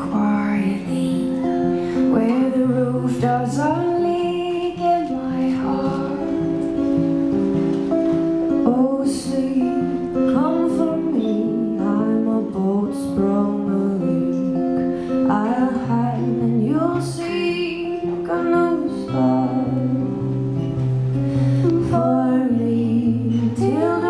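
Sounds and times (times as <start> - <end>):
woman singing: 0.0 - 6.8, 8.5 - 20.4, 21.5 - 24.0
acoustic guitar: 0.0 - 24.0.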